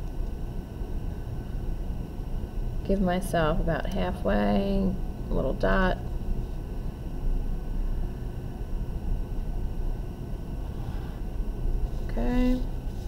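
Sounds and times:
low room noise rumble: 0.0s - 13.0s.

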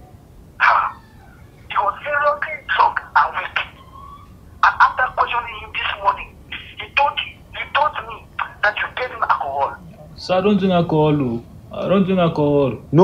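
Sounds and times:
voice on speakerphone: 0.6s - 1.0s, 1.7s - 3.8s, 4.6s - 10.4s.

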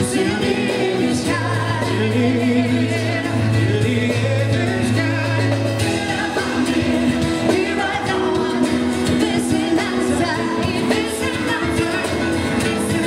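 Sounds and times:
acoustic guitar: 0.0s - 13.0s
live band playing: 0.0s - 13.0s
person singing: 0.0s - 13.0s.

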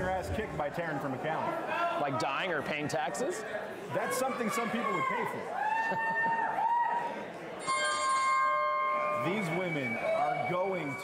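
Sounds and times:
wrestling ring bell ringing: 7.6s - 11.0s.

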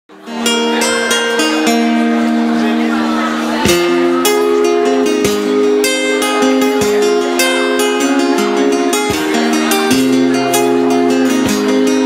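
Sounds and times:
acoustic guitar strummed and picked: 0.1s - 12.0s.

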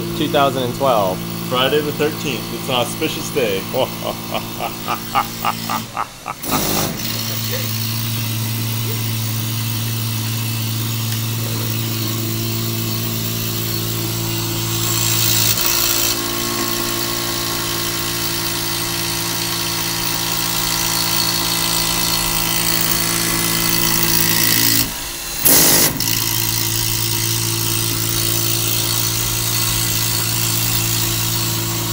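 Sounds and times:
end mill cutting metal: 0.0s - 31.9s
milling machine spindle humming: 0.0s - 31.9s.

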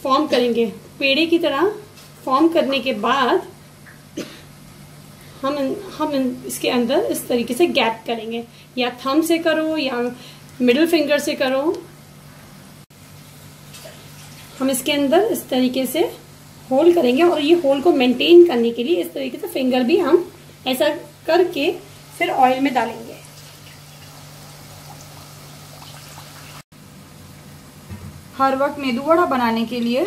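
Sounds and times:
batter sizzling in hot oil: 21.5s - 26.7s.

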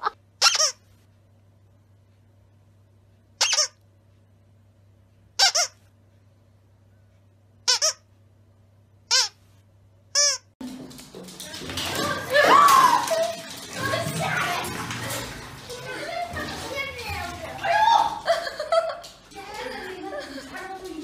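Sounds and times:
squeaky dog toy squeaks: 0.0s - 0.8s, 3.4s - 3.8s, 5.4s - 5.8s, 7.6s - 8.1s, 9.1s - 9.4s, 10.1s - 10.5s.

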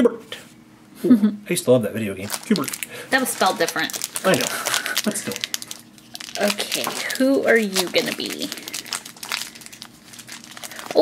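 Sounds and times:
foil bag crinkling: 2.2s - 11.0s.

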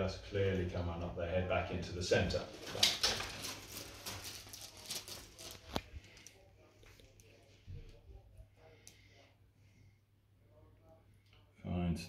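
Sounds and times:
faint rustling handling: 2.4s - 9.2s.

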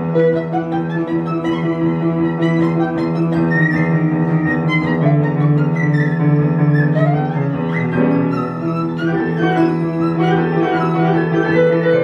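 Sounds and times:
piano accompaniment: 0.0s - 12.0s.

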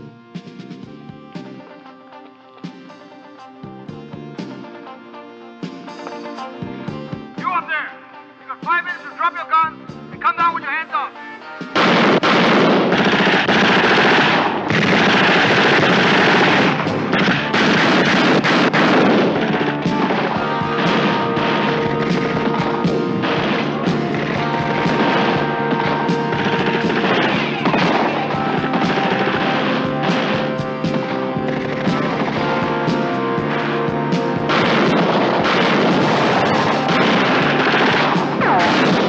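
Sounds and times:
film score music: 0.0s - 39.0s
rapid automatic gunfire: 11.8s - 39.0s.

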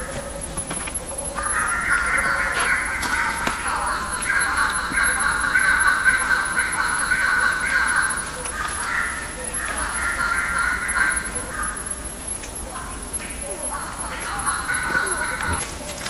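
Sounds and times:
repeated animal calls: 0.0s - 16.0s
steady animal call: 13.2s - 15.9s.

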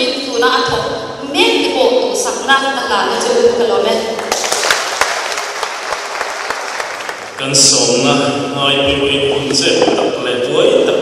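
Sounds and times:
audience applauding: 4.2s - 8.0s.

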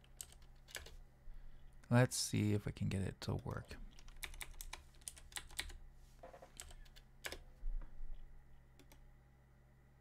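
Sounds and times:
typing on computer keyboard: 0.0s - 1.0s, 3.9s - 7.4s.

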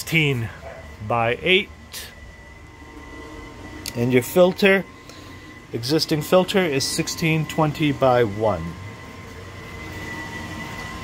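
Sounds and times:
high-pitched whine: 0.0s - 11.0s
machinery hum and hiss: 0.0s - 11.0s.

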